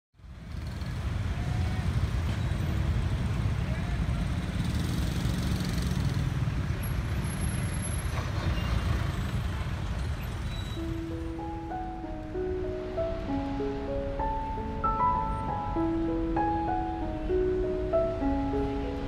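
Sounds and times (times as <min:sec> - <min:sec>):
road traffic rumble: 0:00.2 - 0:19.0.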